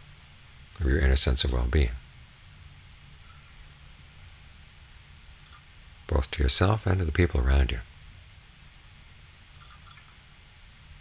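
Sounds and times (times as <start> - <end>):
low hum with light hiss: 0.0 - 11.0.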